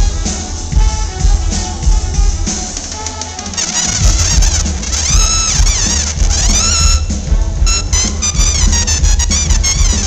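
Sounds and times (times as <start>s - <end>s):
trumpet playing short high notes: 2.8s - 10.0s
low bass line: 3.8s - 10.0s.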